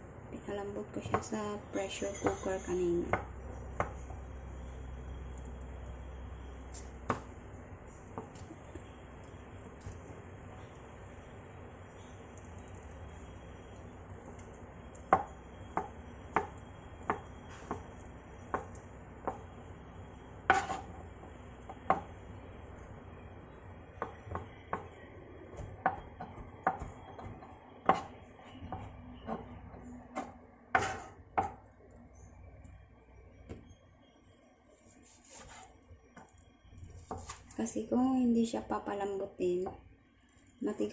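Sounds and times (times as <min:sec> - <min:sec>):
knife chopping on plastic board: 0:07.0 - 0:07.3, 0:15.0 - 0:19.4, 0:20.5 - 0:20.9, 0:24.0 - 0:28.1, 0:30.1 - 0:31.6.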